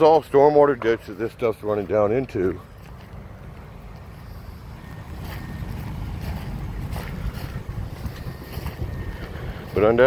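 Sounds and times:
wind buffeting microphone: 2.6 - 10.0.

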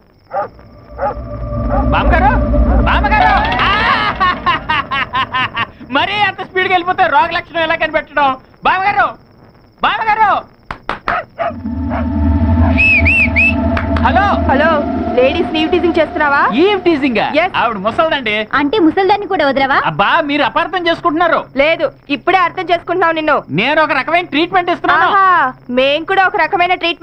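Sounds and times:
low rumble: 0.3 - 6.4, 11.4 - 18.2
low steady drone: 0.4 - 6.4, 11.4 - 18.2
dog barking: 11.1 - 11.5
whistle-like notes: 11.5 - 17.7.

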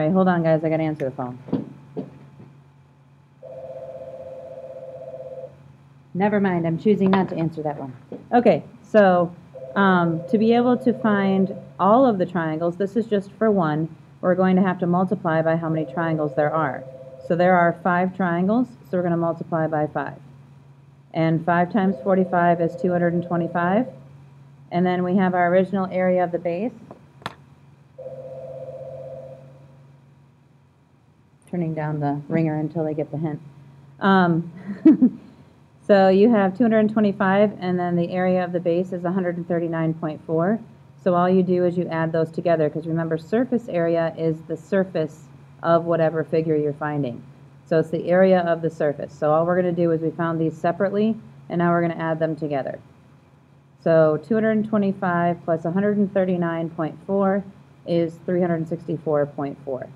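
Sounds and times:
warbling electronic phone ring: 3.4 - 5.6, 9.6 - 11.8, 15.7 - 17.4, 21.8 - 24.1, 28.0 - 29.8.

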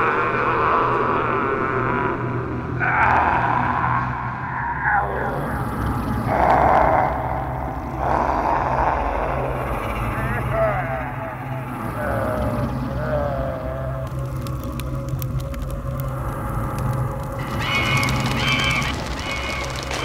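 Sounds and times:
wavering moan-like voice: 0.0 - 15.1
low drone score: 0.0 - 20.0
faint clicks: 11.5 - 20.0.

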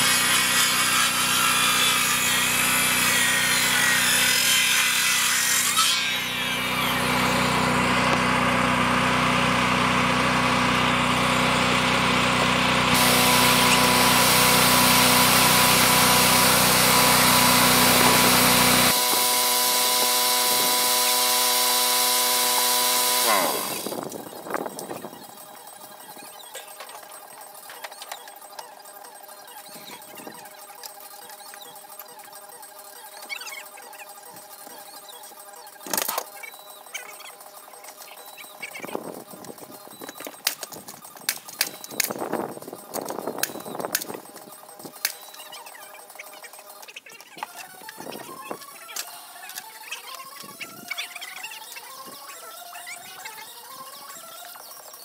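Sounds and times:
machine motor running: 0.0 - 55.0.

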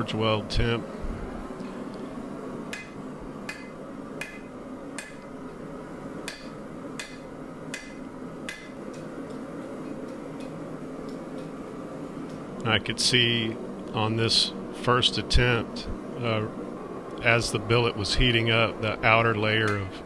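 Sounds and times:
steady hum: 0.0 - 20.0
hammer striking steel on anvil: 2.7 - 5.3, 6.2 - 8.8.

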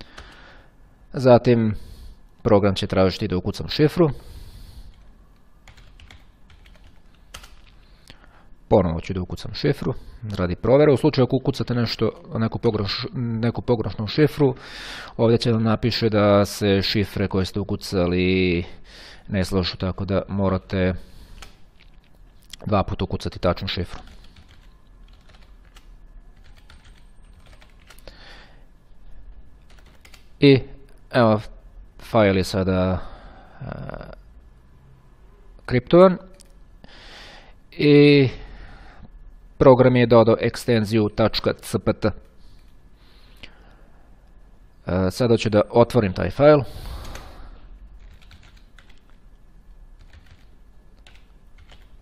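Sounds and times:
computer keyboard typing: 0.2 - 0.4, 4.9 - 7.8, 21.4 - 22.2, 23.9 - 28.1, 29.6 - 30.4, 47.0 - 47.3, 48.0 - 49.2, 50.0 - 52.0.

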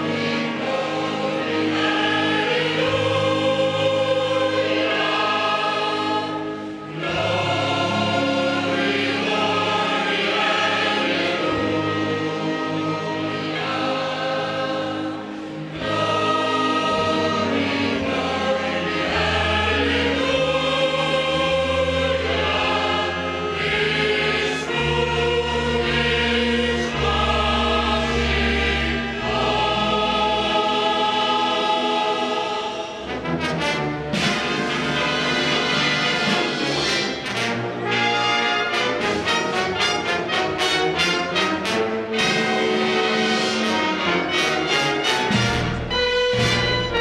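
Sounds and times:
mixed choir singing held notes: 0.0 - 47.0.

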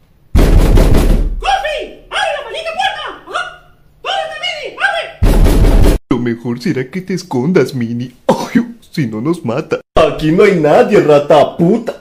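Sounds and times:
cartoon character yelping: 1.4 - 5.2
loud burst of noise: 5.2 - 6.0.

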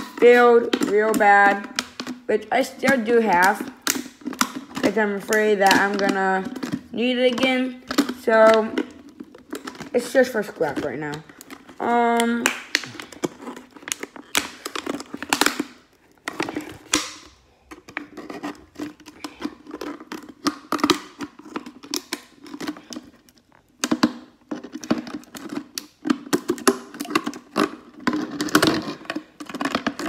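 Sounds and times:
plastic bottle being cut: 0.0 - 30.0.

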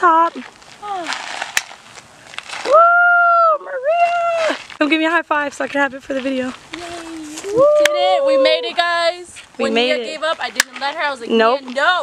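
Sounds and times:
woman squealing: 2.7 - 4.6, 7.5 - 8.7.

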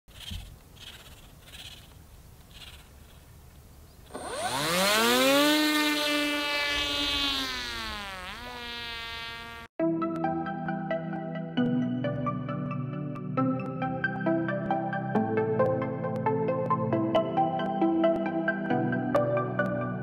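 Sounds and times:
drone propeller buzzing: 4.1 - 9.7.

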